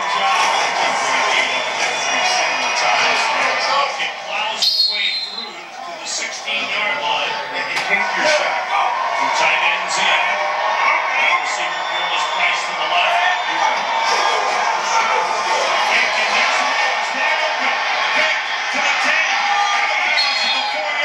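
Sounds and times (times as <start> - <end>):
music through tv speakers: 0.0 - 21.0
stadium crowd noise: 0.0 - 21.0.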